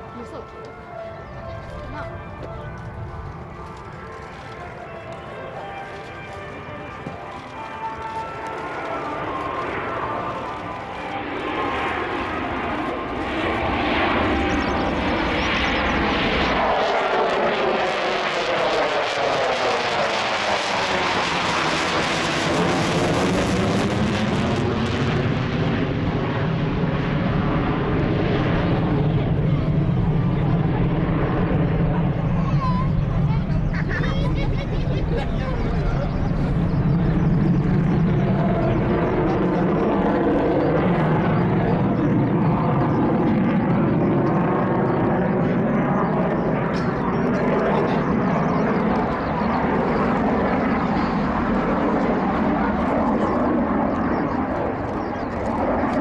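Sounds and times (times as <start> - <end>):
jet engines roaring overhead: 0.0 - 56.0.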